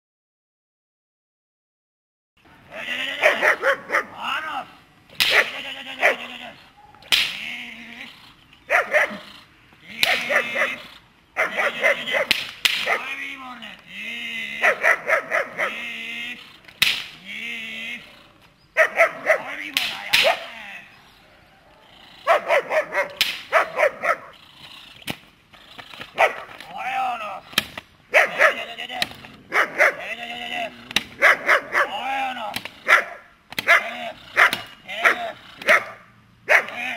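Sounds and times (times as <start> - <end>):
dog whining: 2.7 - 7.1, 10.1 - 12.3, 20.2 - 24.4
dog barking: 3.2 - 4.2, 5.3 - 7.1, 8.7 - 9.3, 10.0 - 13.1, 14.6 - 15.8, 18.8 - 19.5, 21.6 - 24.3, 26.2 - 26.5, 28.1 - 28.7, 29.5 - 30.1, 31.2 - 32.0, 32.8 - 36.8.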